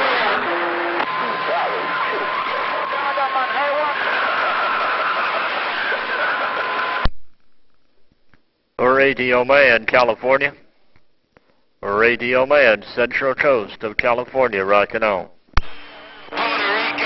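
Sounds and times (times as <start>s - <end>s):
faint garbled radio voices: 0.0s - 7.0s, 15.7s - 17.0s
radio static hiss: 0.0s - 7.1s, 15.6s - 17.0s.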